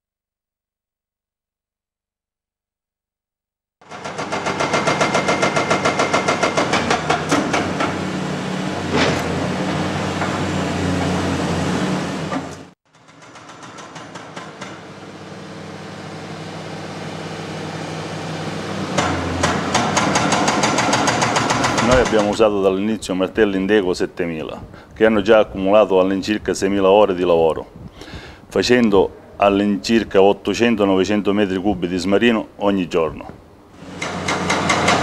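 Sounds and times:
hydraulic breaker hammering rock: 3.8 - 11.3, 12.3 - 15.1, 18.8 - 22.5, 33.8 - 35.0
excavator diesel engine: 4.0 - 12.8, 14.8 - 22.4.

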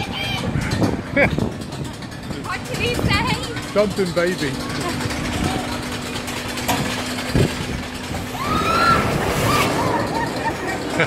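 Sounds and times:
ride machinery humming: 0.0 - 11.0.

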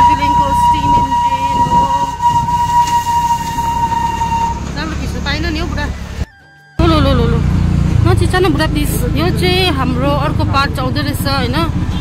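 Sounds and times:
steam locomotive whistle: 0.0 - 5.3
low vehicle rumble: 0.0 - 12.0
voices: 0.0 - 12.0.

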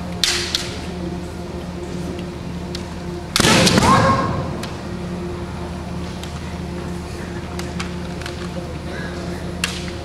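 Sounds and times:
bamboo swords striking: 3.4 - 4.3.

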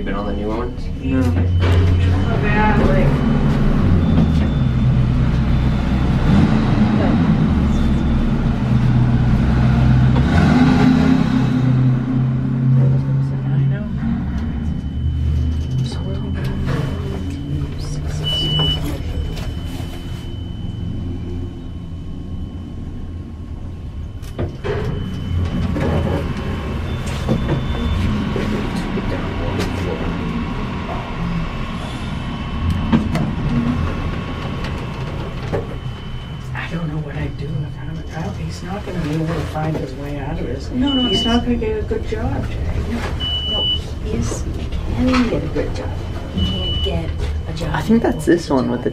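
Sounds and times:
elevator running hum: 0.0 - 48.9
thin high tone: 12.6 - 25.6
short high beep: 13.5 - 22.8, 40.8 - 41.5, 43.2 - 43.9, 46.0 - 48.1.

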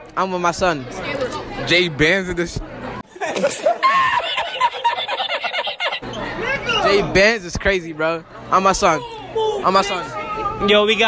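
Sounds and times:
man laughing hard: 3.2 - 6.0.

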